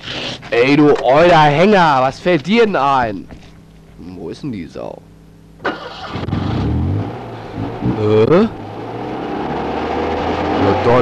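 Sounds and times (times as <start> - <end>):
car engine revving: 5.6 - 11.0.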